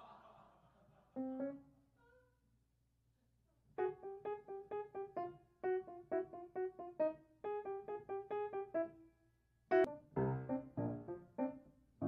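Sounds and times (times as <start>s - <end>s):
solo piano: 1.2s - 1.7s, 3.8s - 9.1s, 9.7s - 12.0s.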